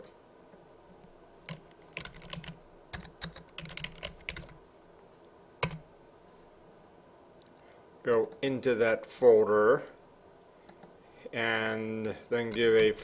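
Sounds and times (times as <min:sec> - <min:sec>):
computer keyboard typing: 0:01.5 - 0:04.6, 0:05.6 - 0:05.8, 0:10.7 - 0:10.9.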